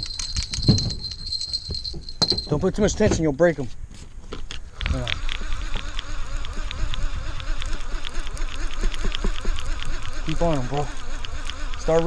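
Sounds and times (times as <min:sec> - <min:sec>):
fishing reel drag buzzing: 0:04.8 - 0:12.0.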